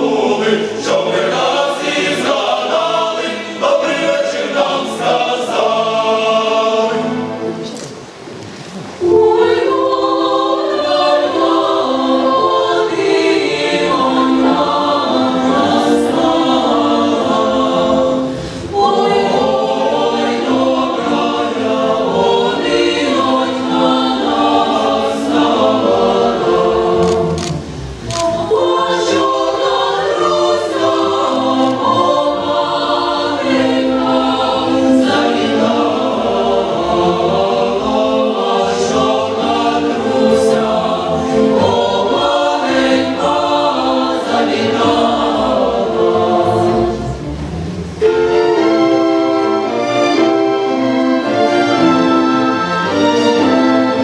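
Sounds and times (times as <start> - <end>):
mixed choir singing opera: 0.0 - 54.0.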